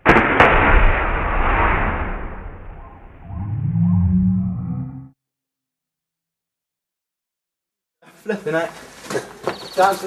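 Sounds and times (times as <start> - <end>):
slowed deep rumble: 0.2 - 5.2
slowed moaning voices: 3.3 - 5.1.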